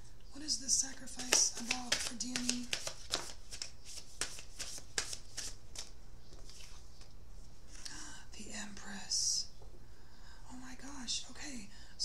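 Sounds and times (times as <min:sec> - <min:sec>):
woman whispering: 0:07.8 - 0:09.5, 0:10.4 - 0:11.7.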